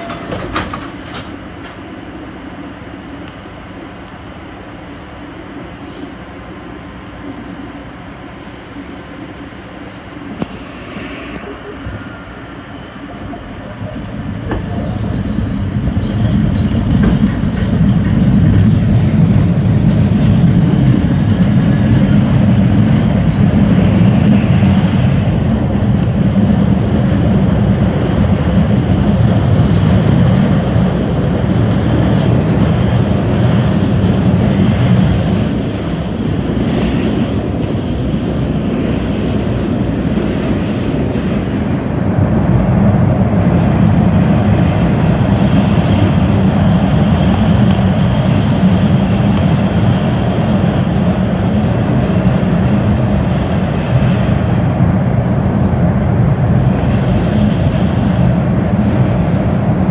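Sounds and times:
subway car rumbling on rails: 0:00.0 - 0:59.9.

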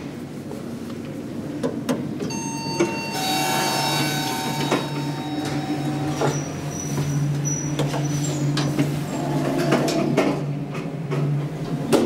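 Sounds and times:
elevator low steady hum: 0:00.0 - 0:12.0
elevator doors sliding shut: 0:02.1 - 0:12.0.

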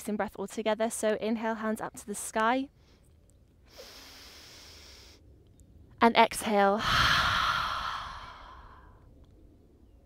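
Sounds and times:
woman exhaling: 0:06.8 - 0:09.0.

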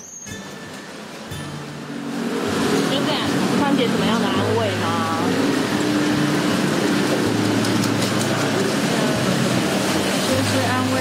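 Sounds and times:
street traffic: 0:00.0 - 0:11.0
vehicle engine humming: 0:00.3 - 0:11.0.

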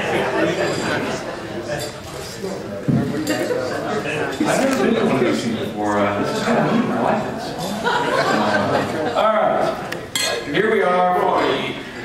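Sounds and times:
tableware clinking: 0:03.1 - 0:03.6, 0:10.1 - 0:10.5.

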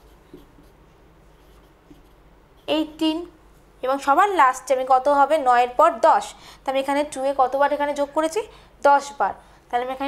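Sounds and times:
marker pen writing on whiteboard: 0:00.0 - 0:03.0.

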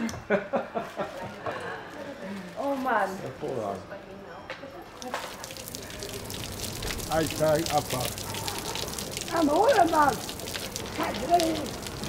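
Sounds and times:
fountain water splashing on paving: 0:04.8 - 0:12.0.

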